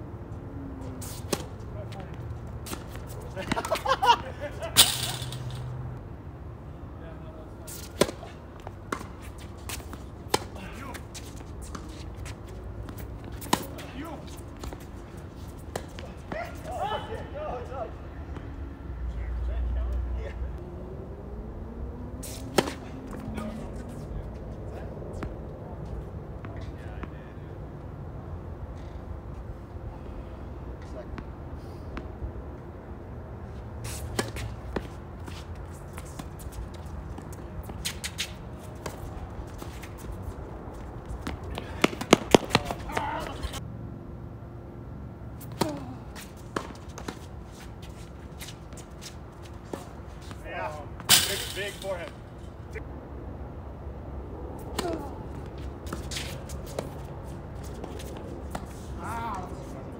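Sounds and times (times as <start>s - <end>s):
tennis balls struck by racquets: 0.8s - 6.0s, 7.6s - 16.9s, 22.1s - 24.4s, 33.9s - 43.6s, 45.4s - 52.4s, 54.6s - 59.9s.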